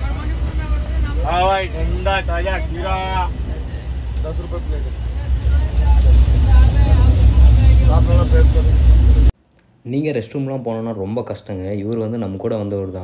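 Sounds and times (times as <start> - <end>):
passengers' voices: 0.0 - 9.3
loud low train rumble: 0.0 - 9.4.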